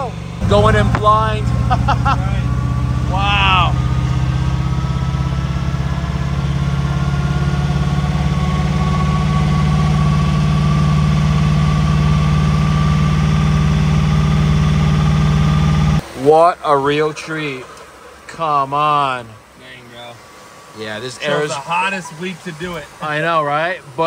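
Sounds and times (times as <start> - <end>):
engine running: 0.0 - 24.0.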